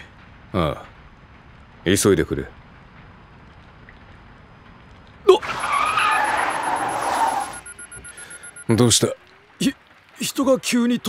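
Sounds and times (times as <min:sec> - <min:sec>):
rain hissing: 0:00.0 - 0:11.0
startled cry: 0:05.3 - 0:07.6
tyres screeching: 0:05.3 - 0:08.5.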